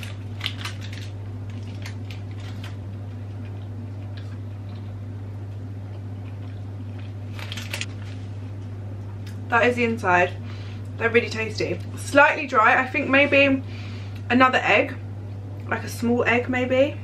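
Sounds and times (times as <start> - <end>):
person chewing: 0.0 - 7.9.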